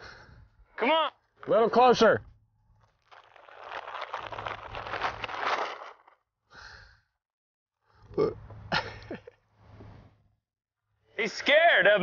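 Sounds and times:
feed sack crinkling and rustling: 0:02.8 - 0:06.2.

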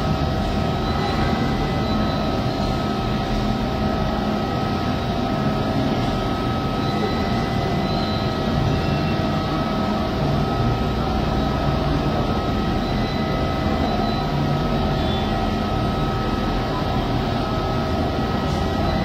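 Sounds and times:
droning hum with whining tones: 0:00.0 - 0:19.0.

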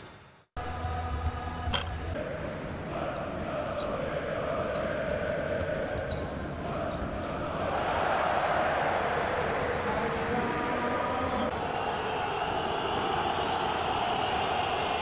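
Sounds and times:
crowd noise: 0:00.6 - 0:15.0.

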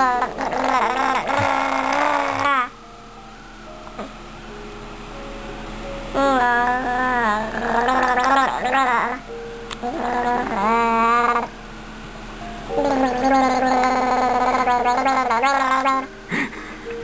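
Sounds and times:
baby gurgling: 0:00.0 - 0:02.7, 0:06.2 - 0:09.2, 0:09.8 - 0:11.5, 0:12.7 - 0:16.6.

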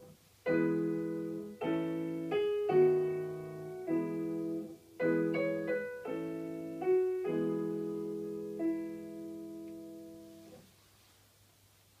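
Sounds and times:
faint low hum: 0:00.0 - 0:12.0
keyboard chord: 0:00.5 - 0:10.5.

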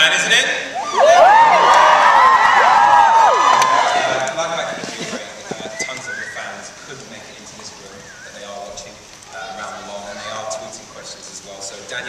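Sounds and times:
crowd screaming and cheering: 0:00.6 - 0:06.9.

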